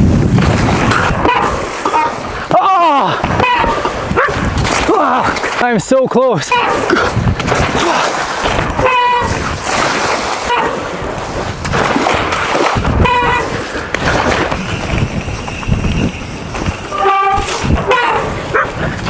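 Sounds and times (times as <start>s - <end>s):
bike rolling over rough grass: 0.0s - 2.4s, 7.1s - 19.0s
bike splashing through water: 0.2s - 5.9s, 6.5s - 19.0s
person shouting exclamations: 2.5s - 3.2s.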